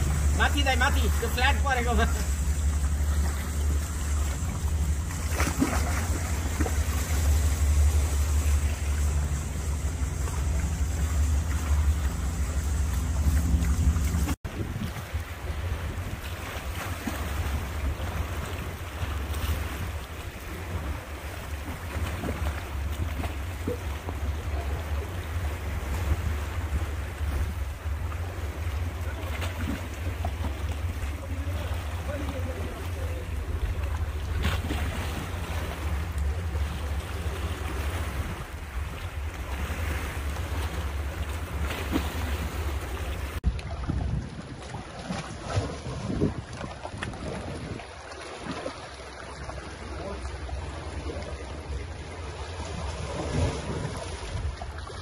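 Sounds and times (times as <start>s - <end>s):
small waves against rocks: 0.0s - 9.2s, 13.6s - 55.0s
wind buffeting microphone: 0.0s - 48.1s.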